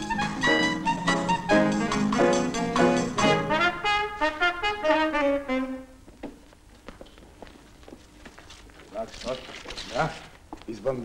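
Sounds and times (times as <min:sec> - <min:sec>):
brass-led music: 0:00.0 - 0:06.0.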